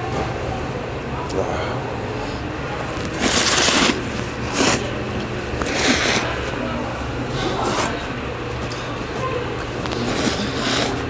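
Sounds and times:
person slurping noodles: 0:02.8 - 0:04.9, 0:05.6 - 0:06.4, 0:07.5 - 0:08.0, 0:09.9 - 0:11.0.

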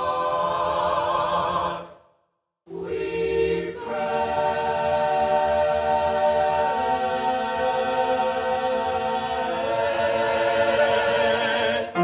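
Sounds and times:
choir singing held chords: 0:00.0 - 0:12.0.

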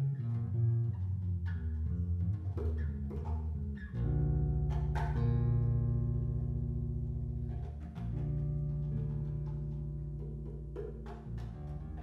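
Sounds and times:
electric bass notes: 0:00.0 - 0:12.0
faint percussion taps: 0:07.4 - 0:12.0.

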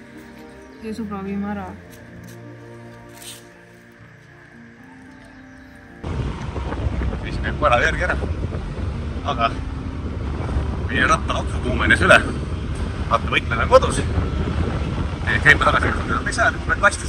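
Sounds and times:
soft background music: 0:00.0 - 0:17.0
wind buffeting microphone: 0:05.4 - 0:17.0.

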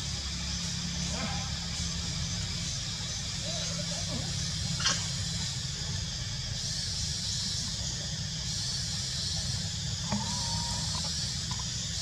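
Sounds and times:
constant high hiss: 0:00.0 - 0:12.0.

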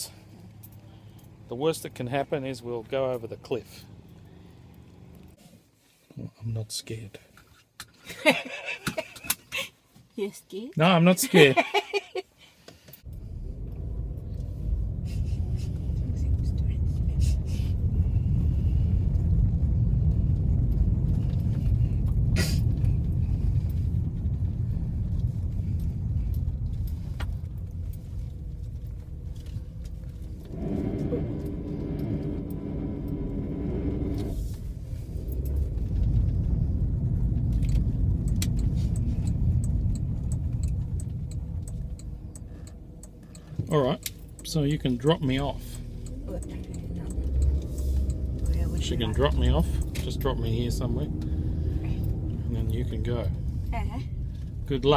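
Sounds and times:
car cabin road rumble: 0:12.8 - 0:54.9
steady humming tone: 0:25.0 - 0:43.6.

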